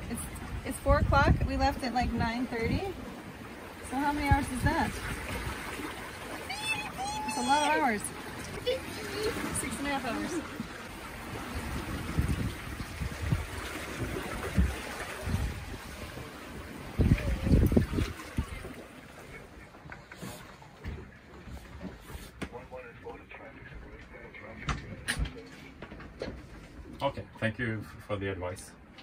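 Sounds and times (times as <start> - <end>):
wind buffeting microphone: 0.0 - 18.8
water rushing past hull: 0.0 - 25.3.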